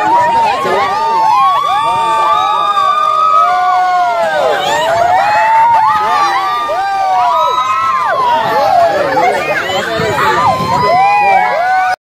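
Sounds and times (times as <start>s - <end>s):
riders screaming and whooping: 0.0s - 12.0s.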